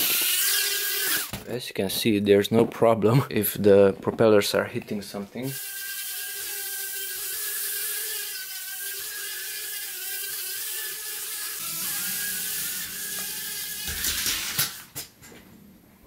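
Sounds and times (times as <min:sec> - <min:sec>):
drone propellers whining: 0:07.2 - 0:14.9
low hum: 0:11.6 - 0:16.0.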